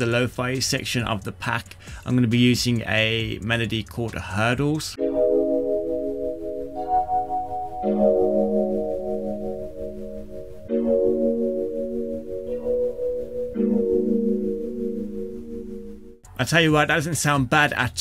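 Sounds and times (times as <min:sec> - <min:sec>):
pulsing kalimba chords: 0:05.0 - 0:16.2.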